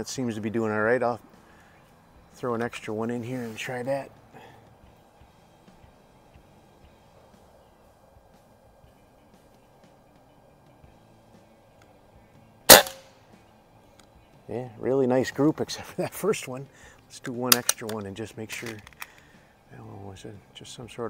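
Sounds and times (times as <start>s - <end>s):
air rifle shot: 12.7s - 13.1s.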